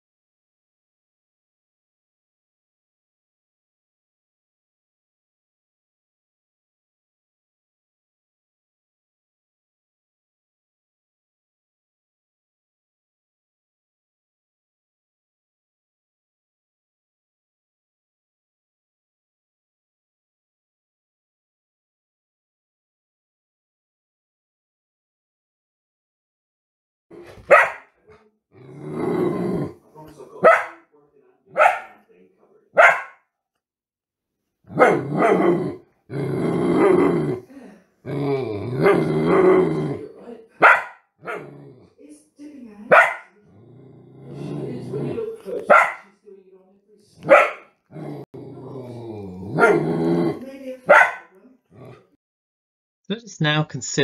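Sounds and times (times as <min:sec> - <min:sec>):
dogs barking: 0:27.4 - 0:27.9, 0:30.4 - 0:30.8, 0:31.5 - 0:32.0, 0:32.8 - 0:33.2, 0:34.7 - 0:35.8, 0:40.6 - 0:41.7, 0:42.9 - 0:43.4, 0:45.6 - 0:46.1, 0:47.2 - 0:48.2, 0:49.5 - 0:50.0, 0:50.9 - 0:51.3.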